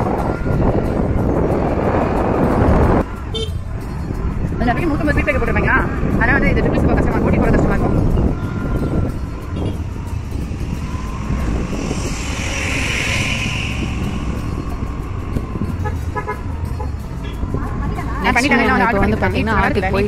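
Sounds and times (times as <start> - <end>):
wind noise: 0.0 - 20.0.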